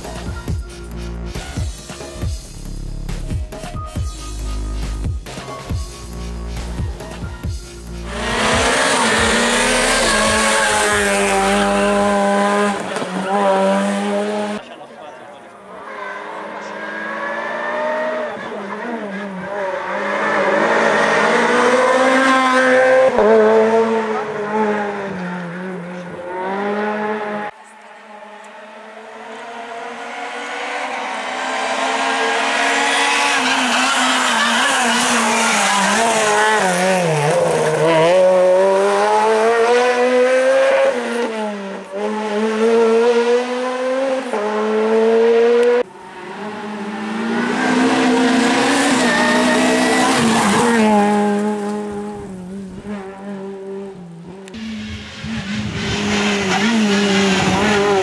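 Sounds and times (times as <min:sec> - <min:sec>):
rally car engine revving: 0:08.0 - 0:14.8, 0:15.6 - 0:58.0.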